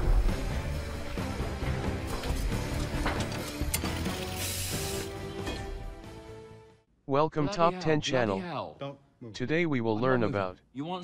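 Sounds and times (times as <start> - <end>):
faceplate closing hiss: 3.3 - 5.1.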